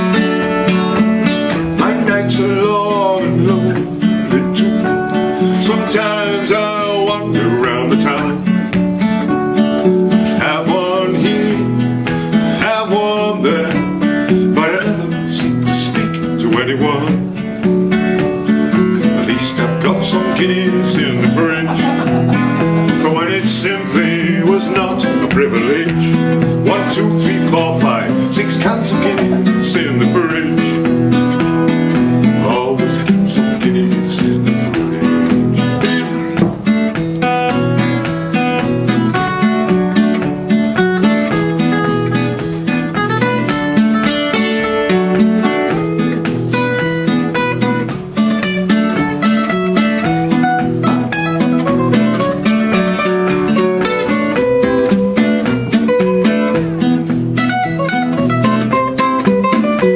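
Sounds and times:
acoustic guitars strummed and picked: 0.0s - 59.9s.

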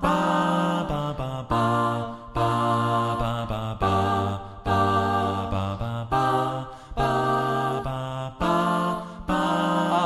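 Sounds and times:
vocal group singing chords: 0.0s - 10.0s.

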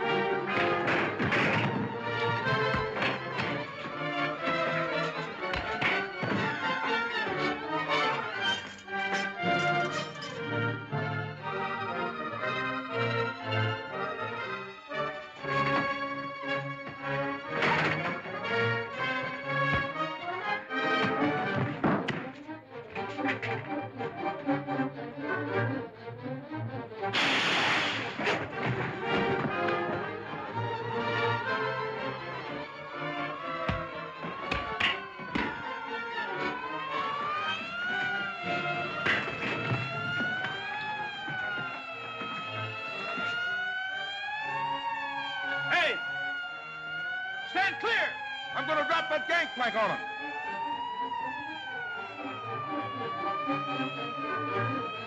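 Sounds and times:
dramatic orchestral music with brass: 0.0s - 55.0s
loud crash: 27.2s - 29.1s.

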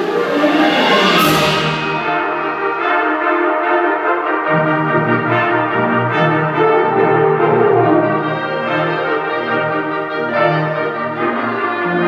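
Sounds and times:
wind ensemble playing chords: 0.0s - 12.0s.

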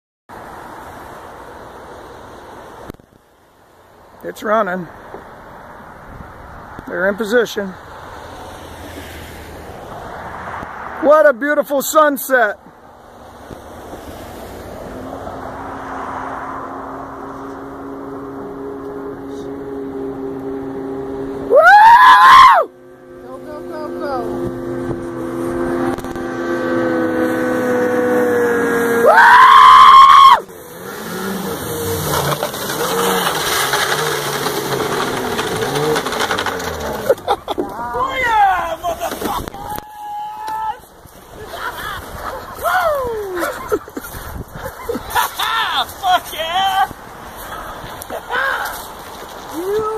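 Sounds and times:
loud shouts: 21.5s - 22.7s, 29.0s - 30.5s, 37.6s - 40.9s, 42.6s - 43.5s, 45.4s - 48.8s.

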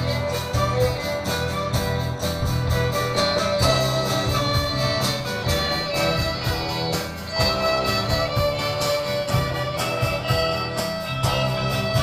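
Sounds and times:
acoustic guitar: 0.0s - 12.0s
drum kit beat: 0.0s - 12.0s
violins and cello: 2.8s - 12.0s.

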